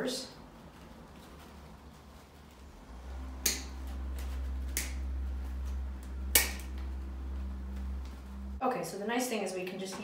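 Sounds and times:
steady low hum: 0:00.3 - 0:08.6
wire cutters snipping wire: 0:05.6 - 0:06.8.

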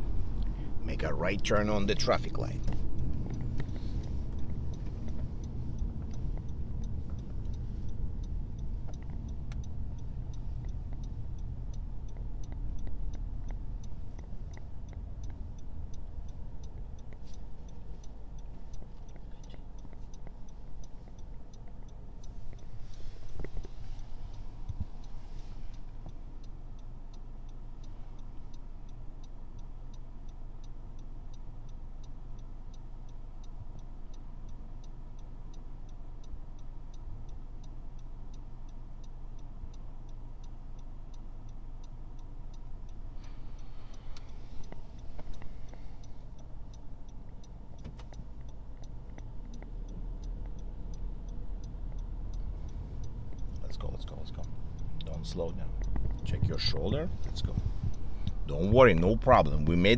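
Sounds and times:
car engine hum: 0:00.0 - 0:59.9
turn signal ticking: 0:00.0 - 0:59.9.

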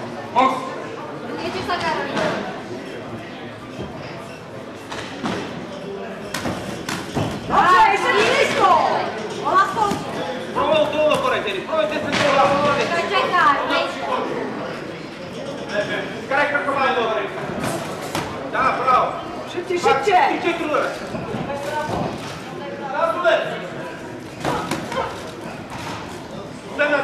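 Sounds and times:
murmur of voices in a hall: 0:00.0 - 0:27.0
voices shouting in echoing hall: 0:07.5 - 0:10.8.

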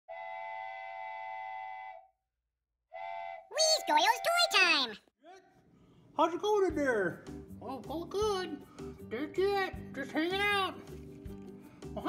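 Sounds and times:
cartoon steam whistle: 0:00.1 - 0:02.1, 0:02.9 - 0:04.7.

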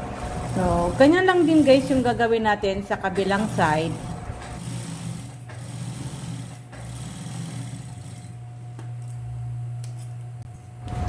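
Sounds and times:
sewing machine stitching: 0:00.0 - 0:02.2, 0:03.1 - 0:08.4
motor humming: 0:00.0 - 0:11.0.

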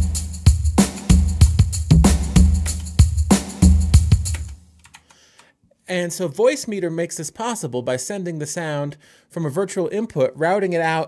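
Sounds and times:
kick and snare drum hits: 0:00.0 - 0:04.5.

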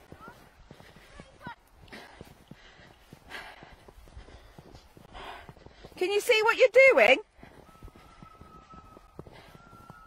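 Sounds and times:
footsteps crunching through snow: 0:00.0 - 0:10.0.

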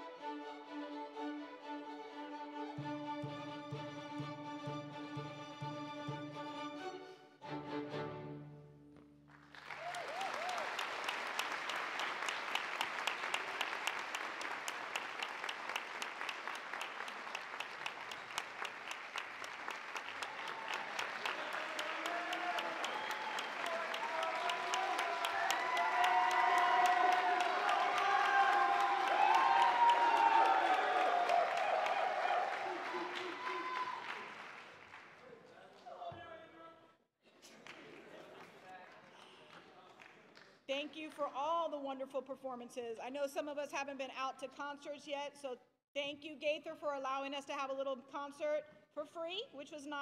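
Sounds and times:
string orchestra: 0:00.0 - 0:09.3
audience applause: 0:09.3 - 0:36.0, 0:37.4 - 0:40.5
voices calling out and cheering: 0:20.2 - 0:34.4.

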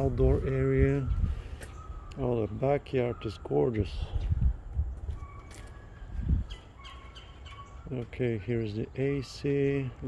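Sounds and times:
songbirds chirping: 0:00.0 - 0:10.0.

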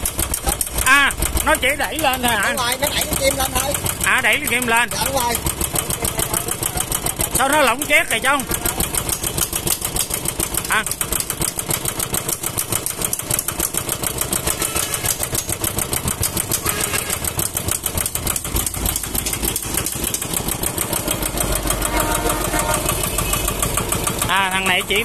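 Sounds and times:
diesel tiller engine idling: 0:00.0 - 0:25.0.

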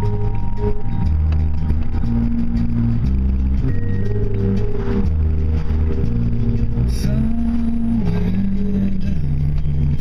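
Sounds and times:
car engine and road drone: 0:00.0 - 0:10.0
music with low chords: 0:00.0 - 0:10.0.

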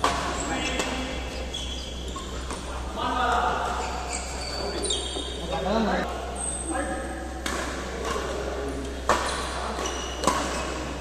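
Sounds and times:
racket hitting shuttlecock: 0:00.0 - 0:01.2, 0:07.4 - 0:11.0
shoes squeaking on court: 0:00.0 - 0:05.7, 0:09.1 - 0:11.0.

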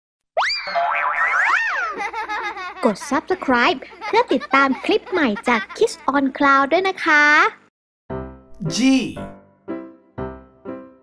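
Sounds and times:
springy boing: 0:00.4 - 0:02.0.

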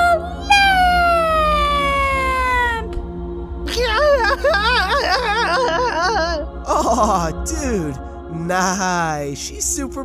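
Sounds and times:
person singing long high note: 0:00.0 - 0:03.0
faint background music: 0:00.0 - 0:10.0.

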